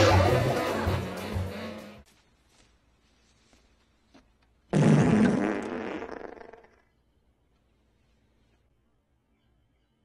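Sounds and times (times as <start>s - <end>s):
fart sound effect: 4.7s - 6.9s.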